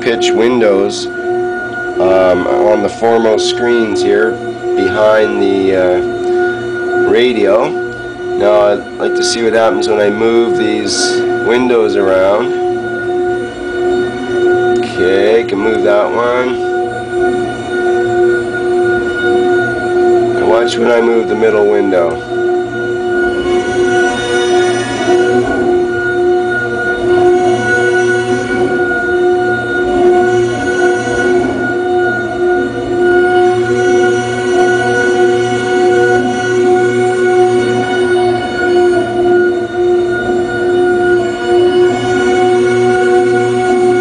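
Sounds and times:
low hum: 0.0 - 44.0
radio interference droning tone: 0.0 - 44.0.

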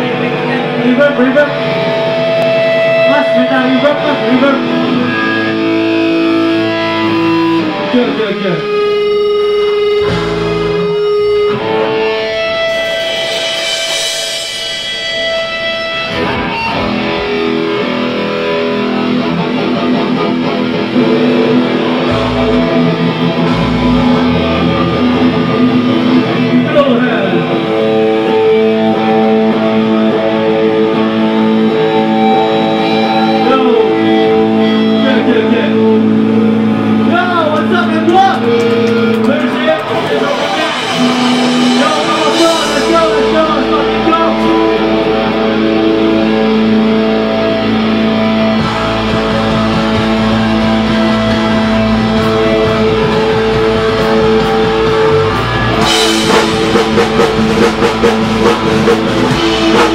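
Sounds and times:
punk band ringing chords: 0.0 - 59.9.

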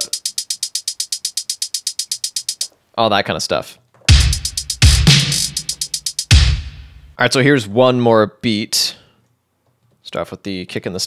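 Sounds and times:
electronic hi-hat roll: 0.0 - 2.7, 4.1 - 7.2.

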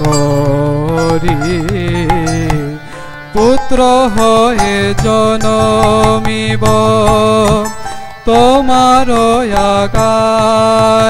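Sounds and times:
harmonium: 0.0 - 11.0
man singing devotional song: 0.0 - 11.0.

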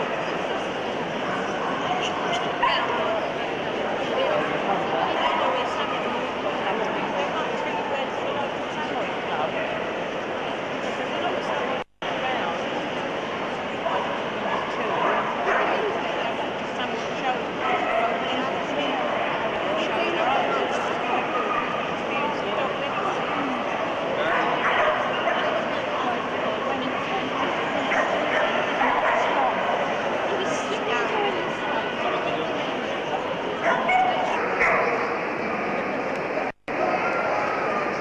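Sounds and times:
crowd chatter in a hall: 0.0 - 38.0
many people talking: 0.0 - 38.0.

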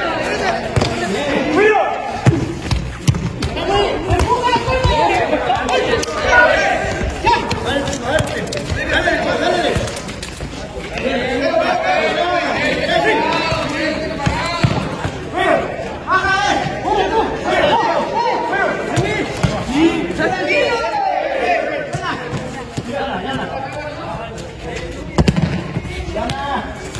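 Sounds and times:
people shouting and talking: 0.0 - 26.9.

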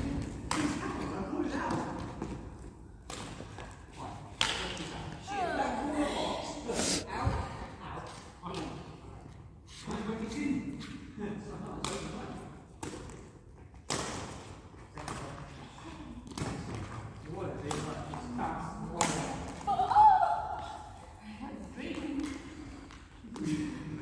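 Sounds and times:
rackets hitting shuttlecock: 0.1 - 1.1, 1.7 - 4.9, 12.8 - 15.4, 17.7 - 18.1.

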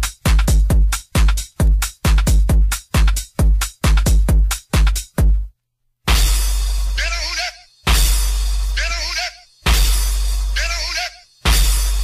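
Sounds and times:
electronic dance track: 0.0 - 5.4, 6.1 - 12.0
chopped vocal snippet: 8.8 - 9.5, 10.5 - 11.3.

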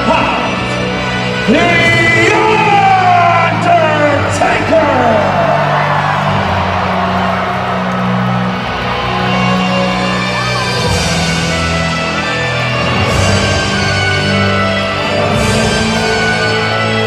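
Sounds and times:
crowd cheering and yelling: 0.0 - 17.0
slow droning entrance music: 0.0 - 17.0
crowd whoops: 5.0 - 11.0.

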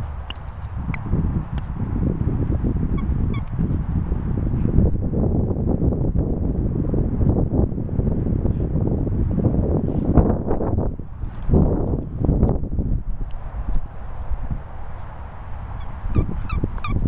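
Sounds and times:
wind rumble: 0.0 - 17.0.

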